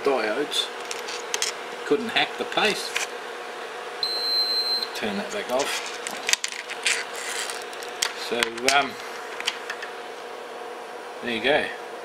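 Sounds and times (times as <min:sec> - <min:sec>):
electrical equipment hum: 0:00.0 - 0:12.0.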